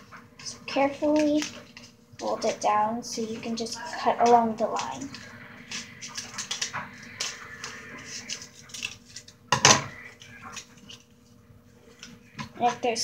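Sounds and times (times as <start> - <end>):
paper liner crinkling: 3.2 - 13.0.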